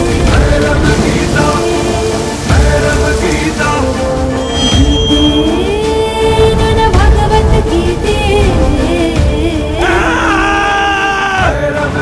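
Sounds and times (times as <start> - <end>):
heavy rain pouring: 0.0 - 12.0
trailer music: 0.0 - 12.0.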